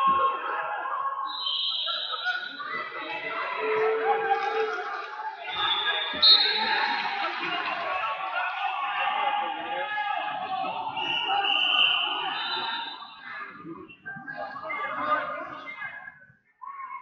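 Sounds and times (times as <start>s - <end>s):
people talking and shouting: 0.0s - 17.0s
referee whistle blast: 5.5s - 6.8s, 11.0s - 13.0s.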